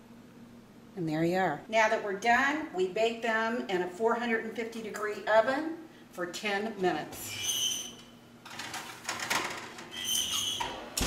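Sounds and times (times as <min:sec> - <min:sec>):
metallic squeal: 0:07.3 - 0:08.1.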